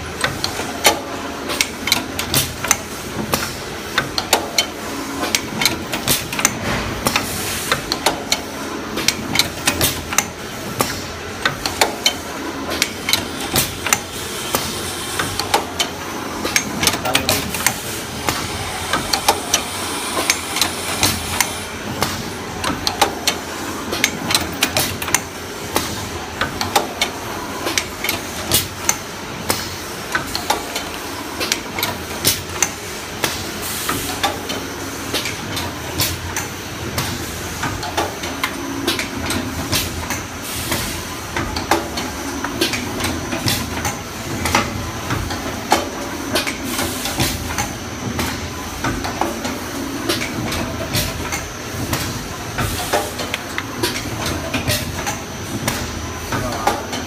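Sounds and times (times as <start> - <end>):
steady machine hiss: 17.8 - 22.3.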